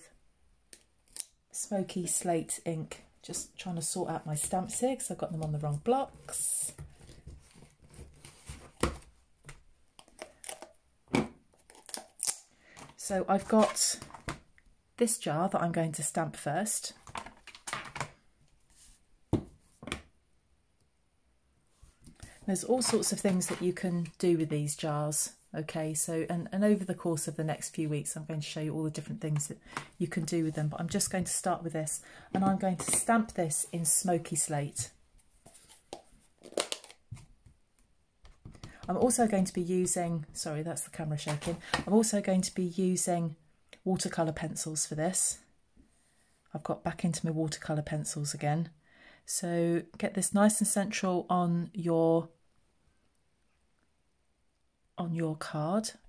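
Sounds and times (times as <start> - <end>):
peeling and crinkling handling: 6.8 - 10.8, 11.5 - 14.4, 35.2 - 37.6
scuffs and clicks of craft supplies: 21.8 - 23.9, 32.3 - 37.6, 41.2 - 41.9.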